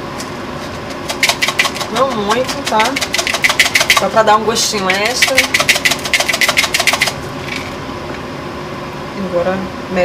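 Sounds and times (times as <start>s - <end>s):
spice mill grinding clicks: 1.1s - 4.1s, 4.8s - 7.7s.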